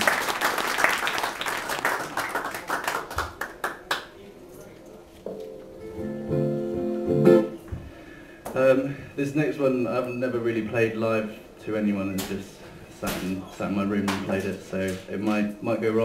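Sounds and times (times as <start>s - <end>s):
audience applause: 0.0s - 4.0s
acoustic guitar plucked: 5.5s - 7.6s.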